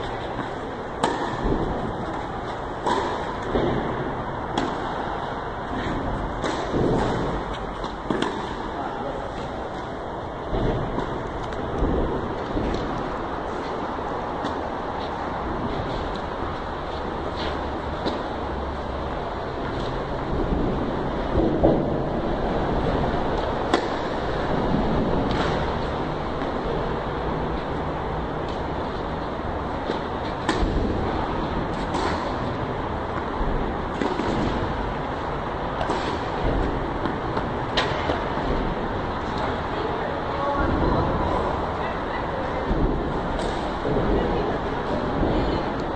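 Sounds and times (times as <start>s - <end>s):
tennis racquets hitting ball: 0.0s - 15.2s, 16.9s - 19.0s, 23.0s - 26.6s, 29.7s - 32.5s, 33.1s - 39.6s, 42.8s - 44.1s
steady background hum: 0.0s - 45.9s.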